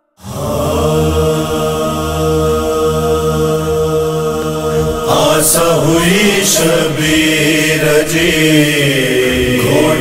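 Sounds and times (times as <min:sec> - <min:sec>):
hummed vocal drone: 0:00.2 - 0:10.0.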